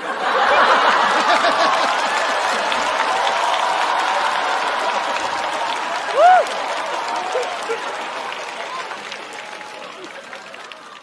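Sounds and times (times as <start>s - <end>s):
audience applauding: 0.0s - 11.0s
person whooping: 3.4s - 7.8s.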